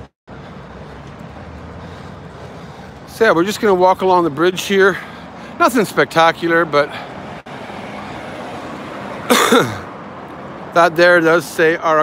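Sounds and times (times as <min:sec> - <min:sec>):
road traffic noise: 0:00.0 - 0:12.0
man coughing: 0:09.3 - 0:09.9.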